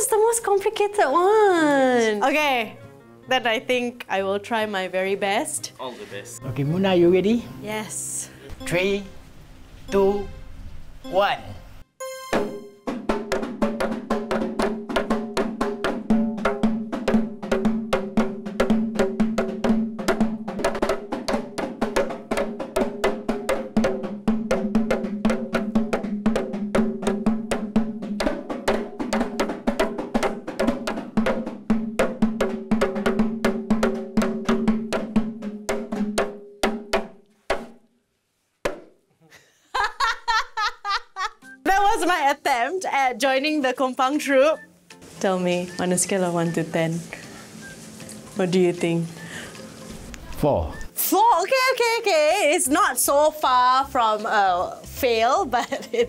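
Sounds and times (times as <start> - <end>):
frame drums beaten by hand: 12.3 - 37.8.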